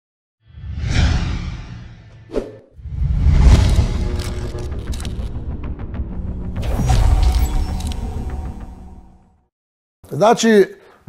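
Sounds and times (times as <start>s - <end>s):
low rumble: 0.5s - 9.2s.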